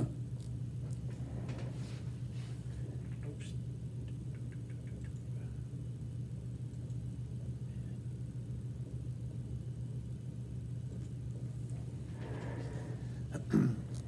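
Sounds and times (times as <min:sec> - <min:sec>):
steady low equipment hum: 0:00.0 - 0:14.0.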